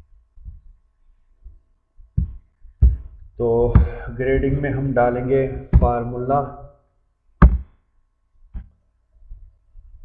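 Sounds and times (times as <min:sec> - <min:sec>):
soft low thumps: 0:00.0 - 0:04.8, 0:05.4 - 0:06.1, 0:07.4 - 0:07.8
faint steady hum: 0:00.0 - 0:10.0.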